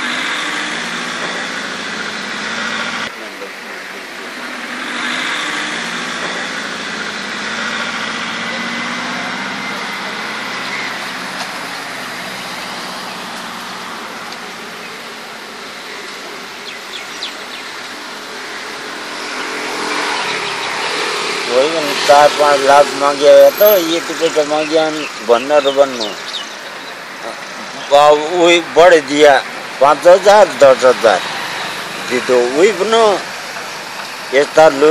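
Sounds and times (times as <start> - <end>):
motor vehicles running: 0.0 - 34.9.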